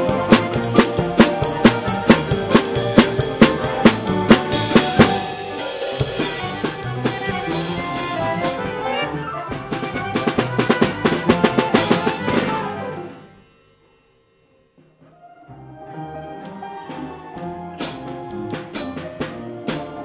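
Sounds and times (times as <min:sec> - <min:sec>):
band playing: 0:00.0 - 0:13.7, 0:14.8 - 0:20.0
drum kit playing: 0:00.0 - 0:15.1, 0:16.4 - 0:20.0.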